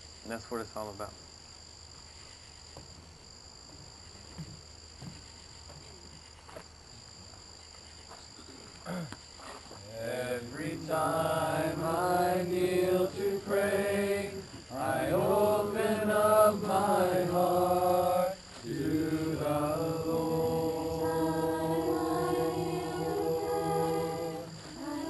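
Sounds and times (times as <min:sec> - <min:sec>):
group singing slow worship song: 0:09.8 - 0:25.0.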